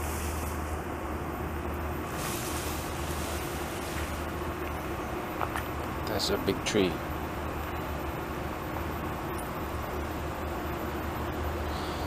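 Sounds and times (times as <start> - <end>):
low outdoor rumble: 0.0 - 12.0
tree dragged through brush: 2.0 - 4.4.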